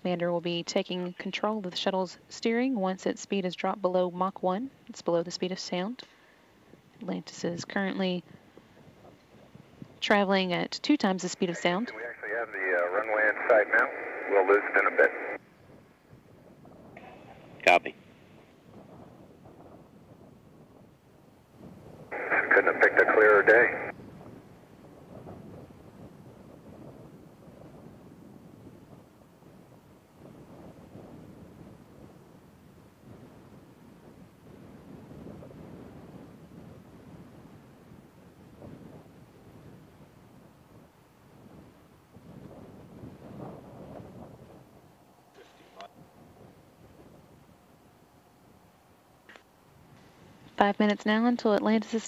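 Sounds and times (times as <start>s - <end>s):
steady radio hiss: 7.0s - 8.2s, 10.1s - 15.5s, 17.0s - 17.9s, 22.0s - 24.0s, 45.3s - 46.0s, 50.0s - 52.0s
two-way radio burst: 11.2s - 15.4s, 22.2s - 23.9s.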